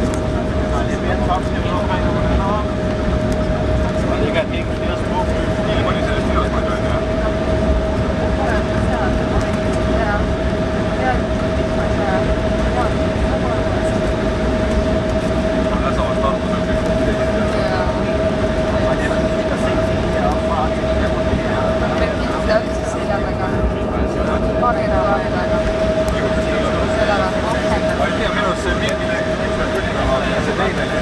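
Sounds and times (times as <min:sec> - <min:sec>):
steady engine whine: 0:00.0 - 0:31.0
wheels and engines rumbling: 0:00.0 - 0:31.0.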